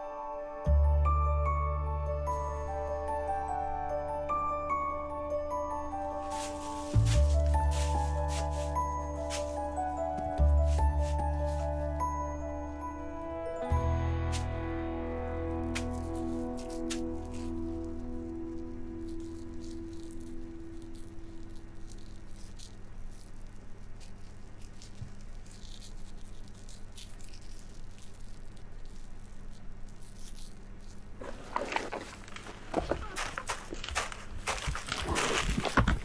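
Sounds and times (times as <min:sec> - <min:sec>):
background music with held notes: 0:00.0 - 0:21.5
animal crackling in undergrowth: 0:06.2 - 0:12.0, 0:15.6 - 0:36.0.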